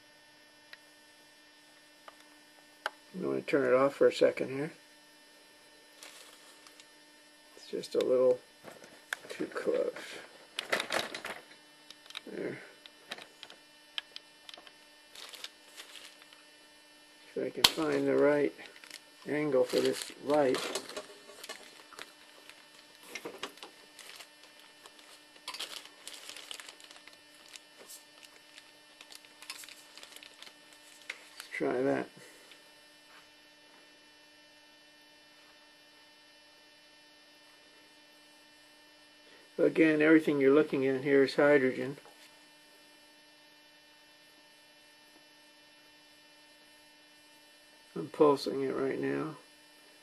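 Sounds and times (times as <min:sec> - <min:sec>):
faint electrical hum: 0:00.0 - 0:50.0
small clicks and ticks: 0:10.6 - 0:16.4.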